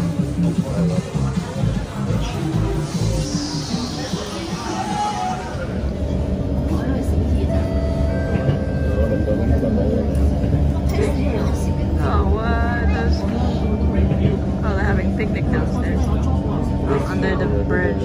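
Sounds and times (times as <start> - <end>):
train motor hum: 0.0 - 17.9
train rumble: 0.0 - 18.0.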